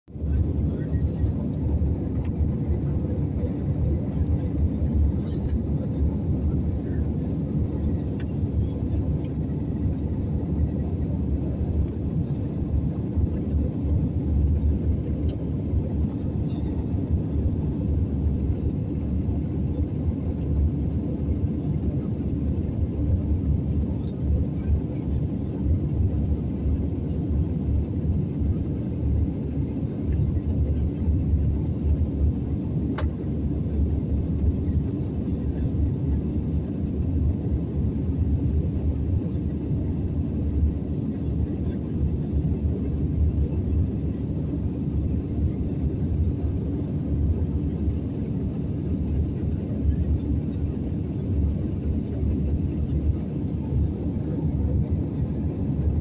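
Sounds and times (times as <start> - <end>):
jet engine and airflow rumble: 0.1 - 56.0.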